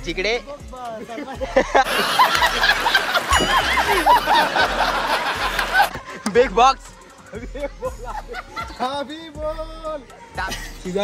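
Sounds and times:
crowd laughing: 1.0s - 9.1s
man laughing heartily: 1.1s - 6.3s, 7.4s - 8.9s.

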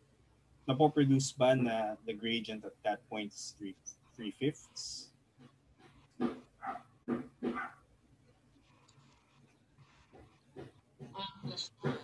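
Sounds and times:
faint background sound: 0.0s - 12.0s.

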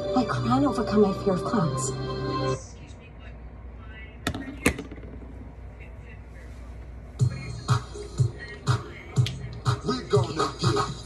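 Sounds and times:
low steady hum: 0.0s - 10.2s.

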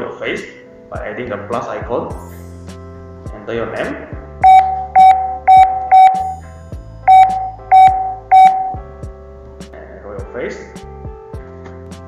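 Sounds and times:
short keypad beeps: 4.4s - 6.3s, 7.1s - 8.8s.

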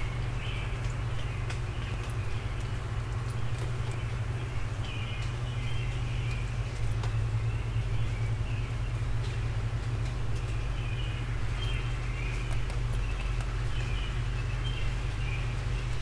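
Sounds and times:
distant traffic rumble: 0.0s - 16.0s
songbirds singing: 0.0s - 16.0s.

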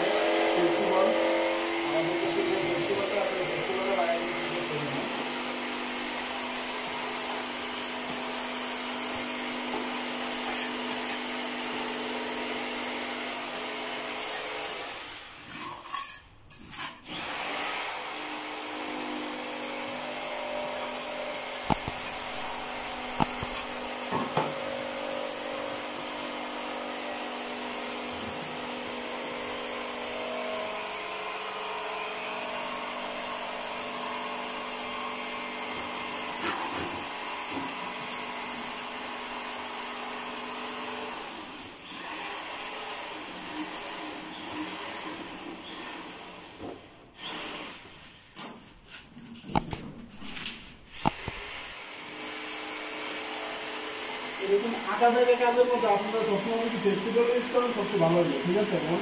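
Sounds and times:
electric motor running: 17.1s - 27.9s, 50.9s - 59.0s.

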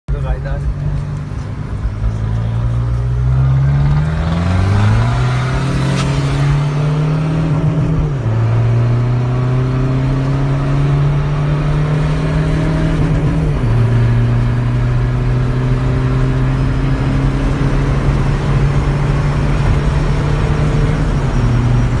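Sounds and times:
diesel car engine accelerating: 0.1s - 22.0s.

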